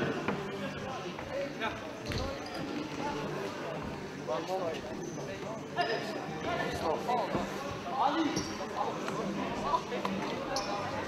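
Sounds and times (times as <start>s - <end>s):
indistinct voices in hall: 0.0s - 11.0s.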